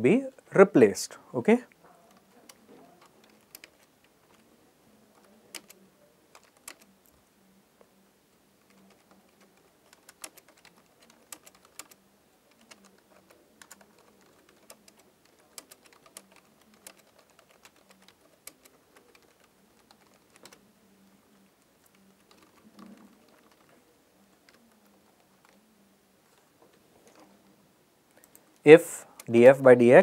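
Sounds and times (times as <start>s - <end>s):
typing on computer keyboard: 2.1s - 4.4s, 5.1s - 6.9s, 8.6s - 20.6s, 21.8s - 25.6s.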